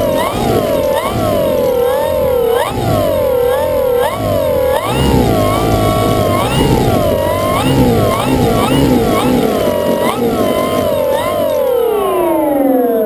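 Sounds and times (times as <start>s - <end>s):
model plane motor revving: 0.0s - 12.8s.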